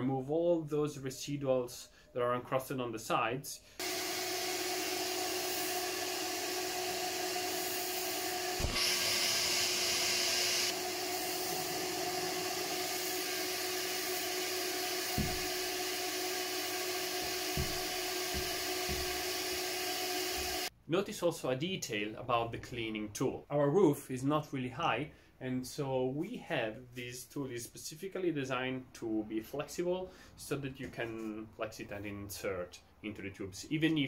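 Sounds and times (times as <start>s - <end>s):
vacuum cleaner running: 3.8s - 20.7s.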